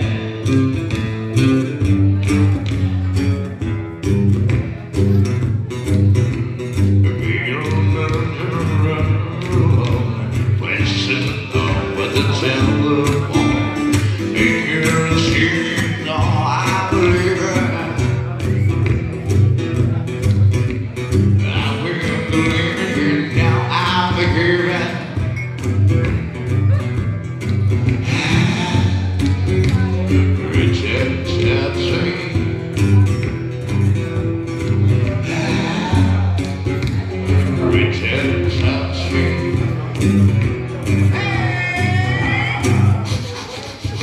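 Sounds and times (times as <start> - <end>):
man singing: 0.0 - 3.0, 7.0 - 18.6, 21.2 - 25.4, 27.9 - 33.2, 34.9 - 44.0
strummed acoustic guitar: 0.0 - 44.0.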